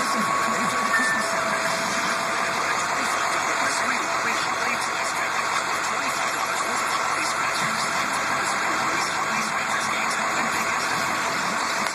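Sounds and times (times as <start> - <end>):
motor running steadily: 0.0 - 11.9.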